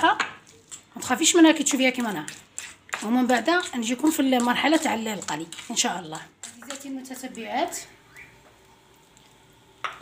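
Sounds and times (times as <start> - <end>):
oil sizzling in a frying pan: 0.5 - 10.0.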